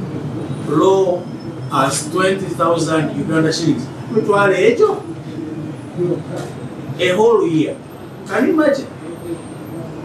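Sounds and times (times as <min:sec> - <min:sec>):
man speaking: 0:00.7 - 0:05.1, 0:07.0 - 0:09.0.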